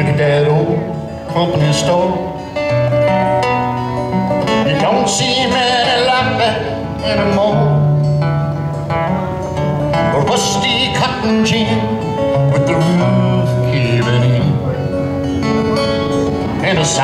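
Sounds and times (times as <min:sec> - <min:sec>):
acoustic guitar playing: 0:00.0 - 0:17.0.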